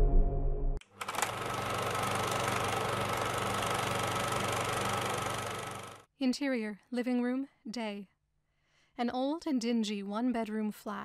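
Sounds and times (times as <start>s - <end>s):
film projector clattering: 0.8s - 6.0s.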